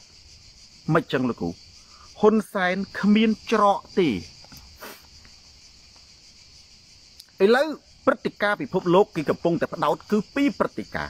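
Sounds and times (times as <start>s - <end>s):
insects chorus: 0.0s - 11.0s
man talking: 0.9s - 1.6s, 2.2s - 4.3s, 7.4s - 11.0s
brief hiss: 4.5s - 5.2s.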